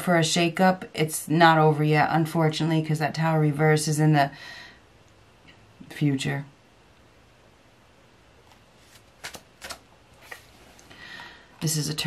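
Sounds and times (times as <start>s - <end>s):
card flicks: 8.9s - 10.4s.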